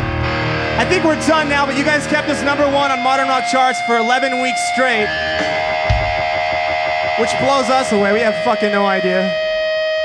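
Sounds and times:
distorted electric guitar sustain: 0.0s - 10.0s
low thump: 5.4s - 7.2s.

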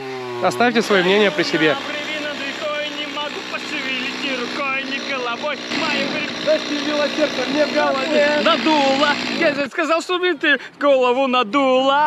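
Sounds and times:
chainsaw idling: 0.0s - 9.8s
voices talking: 0.3s - 12.0s.

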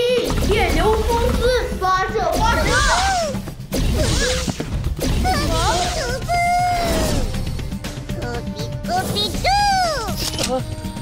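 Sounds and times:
cartoon character voices speaking: 5.2s - 7.2s, 8.2s - 10.2s.

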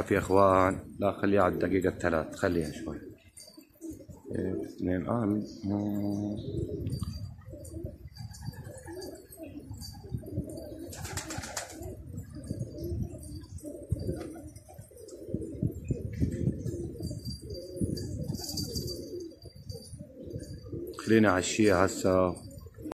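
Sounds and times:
pigeons cooing: 0.0s - 22.9s.

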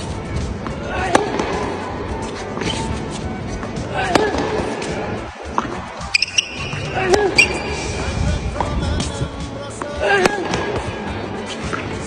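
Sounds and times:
racket striking tennis ball: 0.0s - 7.9s, 8.5s - 12.0s
background music: 0.0s - 12.0s.

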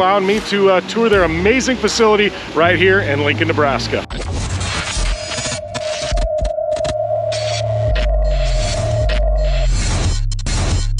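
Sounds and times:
deep bass drone: 0.8s - 10.9s.

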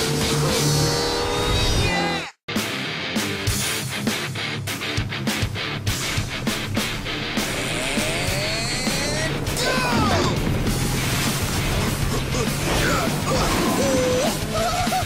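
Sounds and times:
rock music: 0.0s - 15.0s
crashing hits: 5.9s - 13.9s
short rising and falling yells: 7.5s - 11.3s.

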